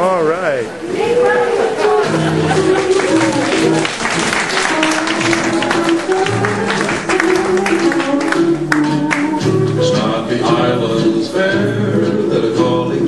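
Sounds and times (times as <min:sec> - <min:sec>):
guitar-led band music: 0:01.9 - 0:13.0.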